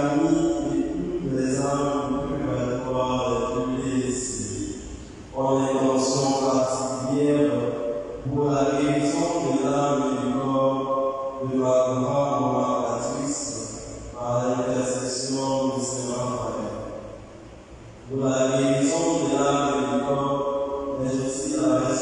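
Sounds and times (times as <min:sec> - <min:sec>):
liturgical chant: 0:00.0 - 0:04.8, 0:05.4 - 0:16.9, 0:18.1 - 0:22.0.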